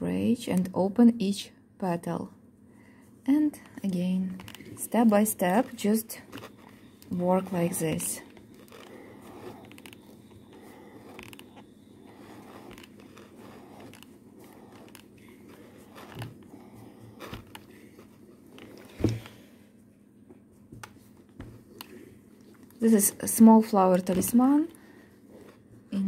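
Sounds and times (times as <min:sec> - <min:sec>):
fingers rustling and scraping cloth: 0:03.3 - 0:19.4, 0:20.5 - 0:26.0.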